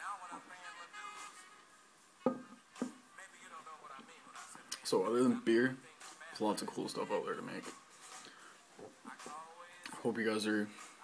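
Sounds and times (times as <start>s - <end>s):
faint background music: 0.0s - 11.0s
short thumps: 2.2s - 3.0s.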